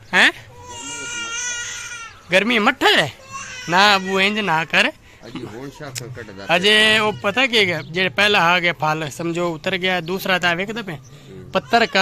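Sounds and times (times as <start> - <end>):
crying wail: 0.6 - 2.2.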